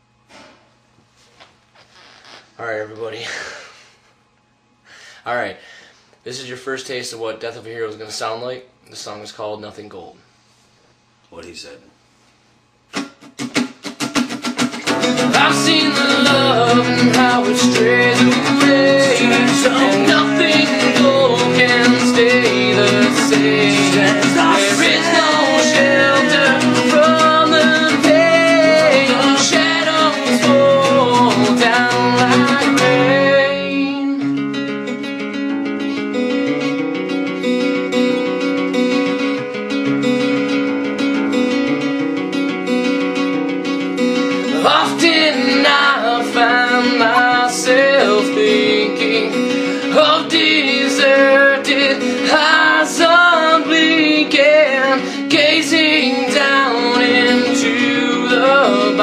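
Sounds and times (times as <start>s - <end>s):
acoustic guitar strumming: 12.9s - 59.0s
person singing: 14.9s - 36.1s, 44.2s - 59.0s
wordless vocal melody: 14.9s - 39.3s, 44.0s - 59.0s.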